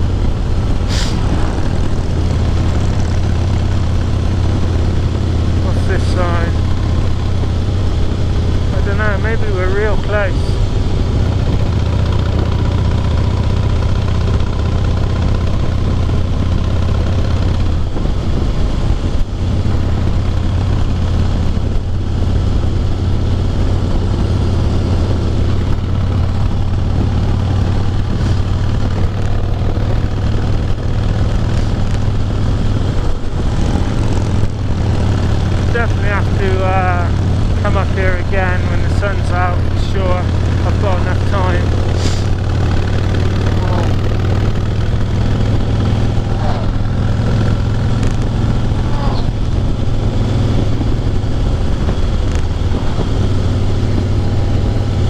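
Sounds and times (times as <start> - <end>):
wind rushing over microphone: 0.0 - 12.9, 14.1 - 55.0
motorcycle engine cruising: 0.0 - 55.0.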